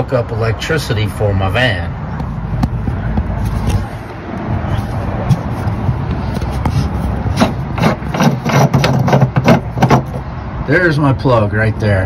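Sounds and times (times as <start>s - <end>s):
steady low rumble: 0.4s - 8.2s
metal threads scraping: 3.4s - 10.2s.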